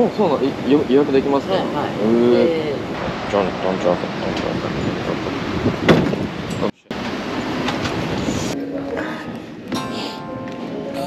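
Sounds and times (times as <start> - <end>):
wind rushing over microphone: 2.6 - 9.7.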